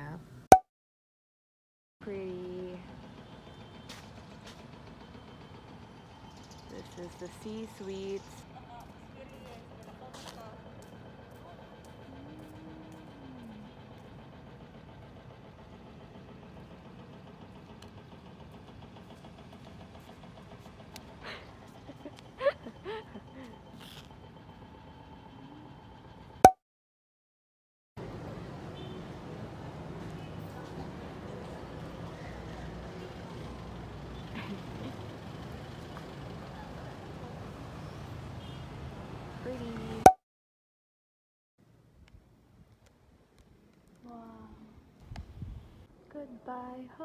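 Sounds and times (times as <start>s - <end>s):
vehicle engine running: 2.2s - 26.4s, 28.0s - 40.0s
low mechanical drone: 9.9s - 26.4s.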